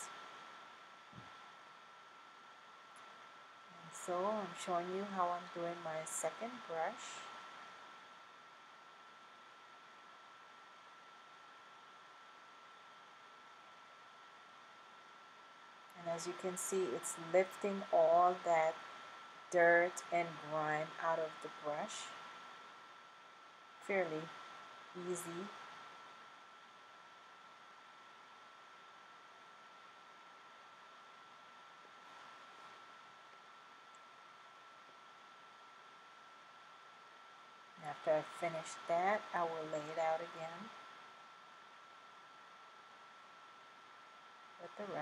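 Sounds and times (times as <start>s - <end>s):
faint steady hiss: 0.0s - 45.0s
thin high whine: 0.0s - 45.0s.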